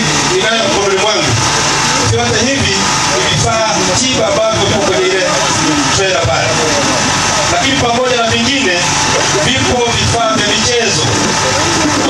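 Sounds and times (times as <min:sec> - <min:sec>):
man speaking into microphone: 0:00.0 - 0:01.4, 0:02.0 - 0:11.4
steady background noise: 0:00.0 - 0:12.0.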